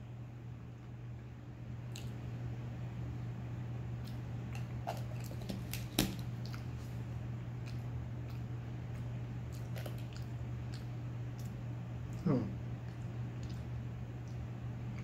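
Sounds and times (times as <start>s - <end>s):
steady low hum: 0.0s - 15.0s
person chewing peanuts: 4.0s - 6.8s, 7.5s - 15.0s.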